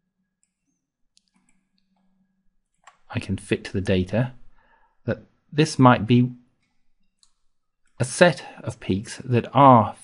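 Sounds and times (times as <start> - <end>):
computer mouse clicks: 0.4 - 2.1, 2.7 - 3.1, 6.6 - 8.0.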